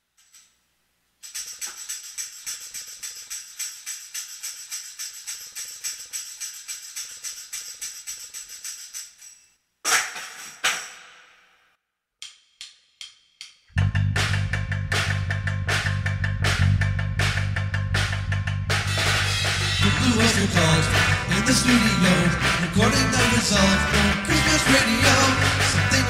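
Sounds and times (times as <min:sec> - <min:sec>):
jingle bells shaking: 0:01.2 - 0:09.6, 0:19.0 - 0:26.0
drum kit playing: 0:13.8 - 0:26.0.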